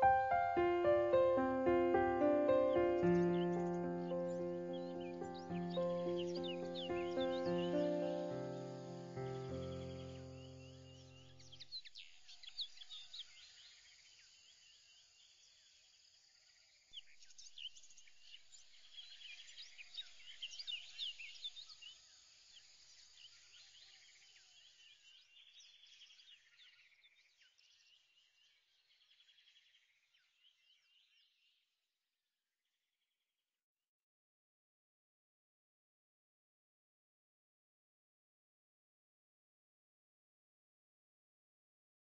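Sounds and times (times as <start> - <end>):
held music chord: 0.0 - 10.6
birds chirping: 0.0 - 11.7.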